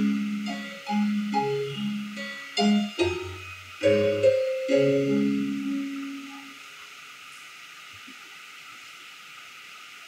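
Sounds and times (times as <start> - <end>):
keyboard music: 0.0 - 6.6
steady background hiss: 0.0 - 10.0.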